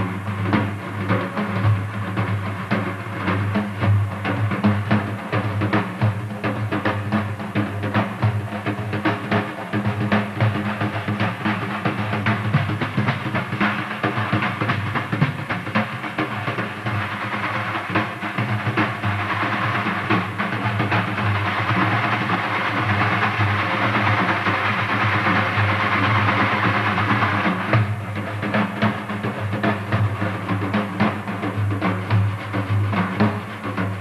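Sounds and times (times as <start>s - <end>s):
frame drums rolling with jingles: 0.0s - 34.0s.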